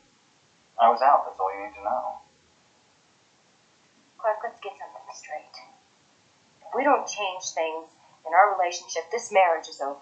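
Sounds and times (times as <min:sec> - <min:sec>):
person speaking: 0:00.8 - 0:02.2, 0:04.2 - 0:05.7, 0:06.6 - 0:10.0.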